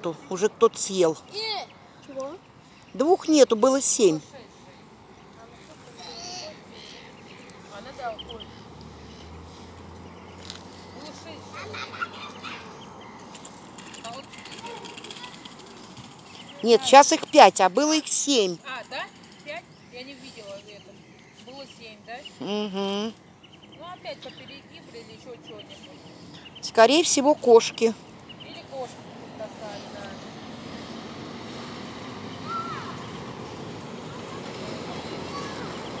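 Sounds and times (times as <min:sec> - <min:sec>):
faint distant voices: 0:00.0 - 0:36.0
outdoor ambience: 0:00.0 - 0:36.0
light rapid clicks: 0:13.3 - 0:16.6.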